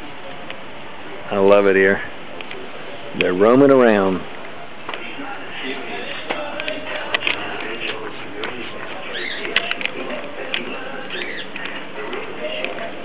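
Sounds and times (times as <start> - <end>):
faint distant voices: 0.0 - 13.0
small birds chirping: 7.6 - 12.9.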